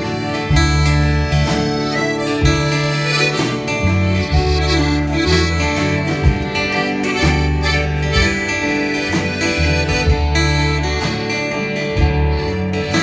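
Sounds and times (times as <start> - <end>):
acoustic guitars strummed: 0.0 - 13.0
melodic lead line: 0.0 - 13.0
piano: 0.0 - 13.0
sustained bass notes: 0.0 - 13.0.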